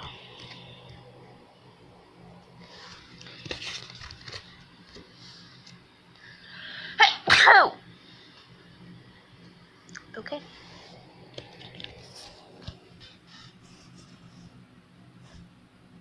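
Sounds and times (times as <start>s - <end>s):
woman sneezing: 7.0s - 7.8s.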